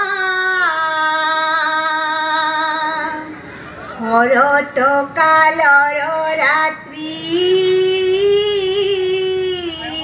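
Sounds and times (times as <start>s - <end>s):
women singing devotional chant: 0.0s - 3.3s, 4.0s - 10.0s.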